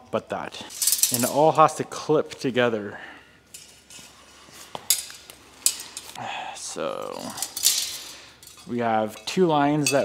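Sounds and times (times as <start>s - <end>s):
metal parts clinking: 0.7s - 1.5s, 3.5s - 4.2s, 4.8s - 6.2s, 7.0s - 10.0s.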